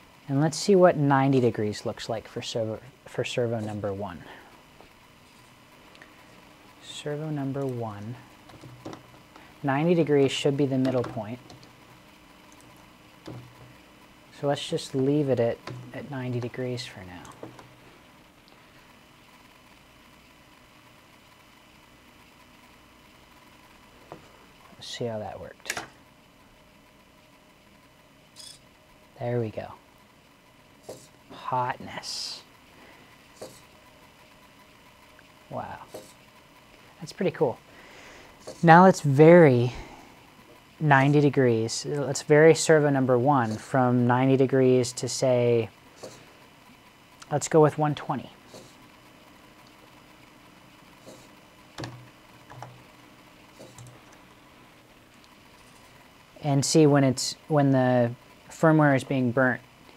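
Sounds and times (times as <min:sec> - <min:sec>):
faint steady hum: 0:00.0 - 0:59.9
room hiss: 0:00.0 - 0:59.9.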